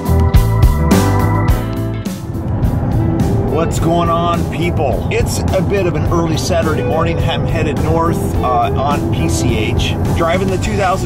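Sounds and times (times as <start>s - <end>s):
car engine and road rumble: 0.0s - 11.0s
guitar music: 0.0s - 11.0s
music or voice: 3.2s - 11.0s.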